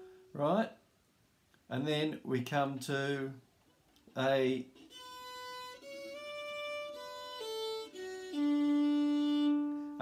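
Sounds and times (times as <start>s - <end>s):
fiddle bowed slowly: 4.7s - 10.0s.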